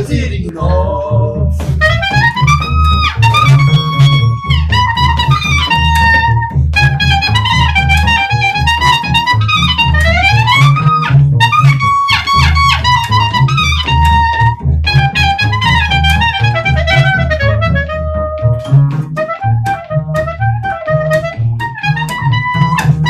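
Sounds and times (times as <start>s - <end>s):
double bass: 0.0s - 23.0s
clarinet melody: 1.6s - 23.0s.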